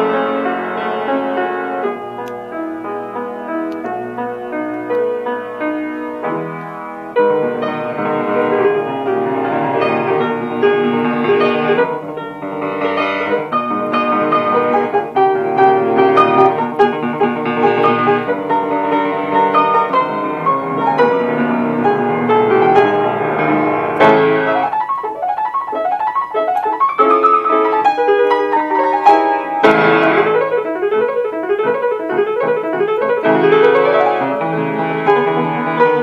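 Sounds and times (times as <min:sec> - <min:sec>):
grand piano playing: 0:00.0 - 0:36.0.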